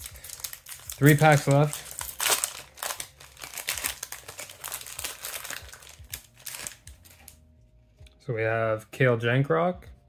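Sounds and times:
foil wrapper crinkling: 0:00.0 - 0:07.4.

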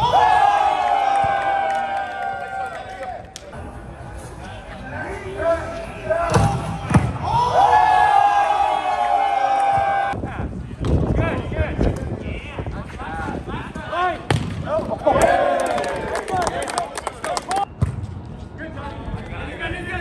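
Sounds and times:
people shouting: 0:00.0 - 0:03.1, 0:06.5 - 0:10.2.

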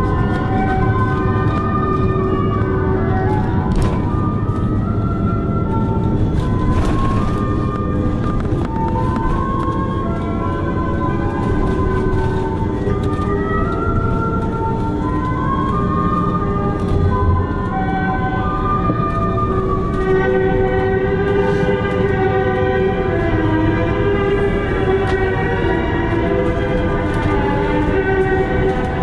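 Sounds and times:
airplane cabin rumble: 0:00.0 - 0:29.0
instrumental christmas music: 0:00.0 - 0:29.0.

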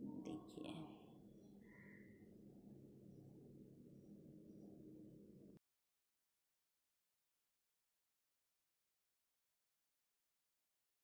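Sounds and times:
faint whispered voice: 0:00.0 - 0:01.2.

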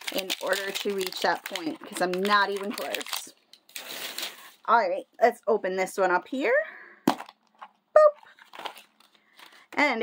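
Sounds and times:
crinkle of wrapped contents: 0:00.0 - 0:04.6, 0:08.3 - 0:09.8.

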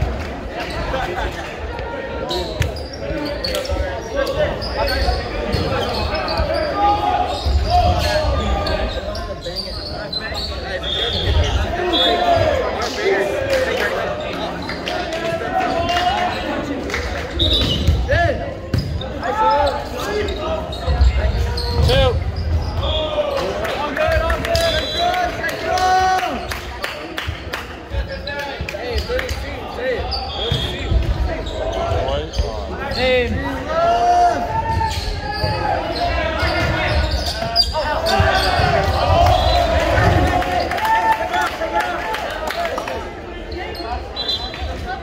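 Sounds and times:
voices echoing in gymnasium: 0:00.0 - 0:45.0.

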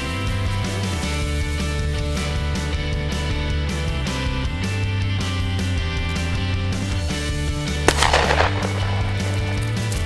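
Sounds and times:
rock music with steady beat: 0:00.0 - 0:10.0
shotgun shot: 0:07.9 - 0:10.0.

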